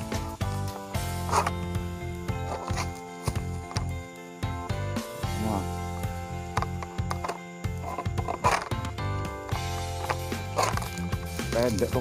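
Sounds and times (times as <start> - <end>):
background music with sustained tones: 0.0 - 12.0.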